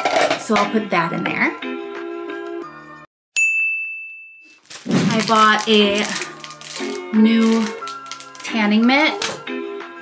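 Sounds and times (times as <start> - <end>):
bright ringing ding: 3.4 - 4.6.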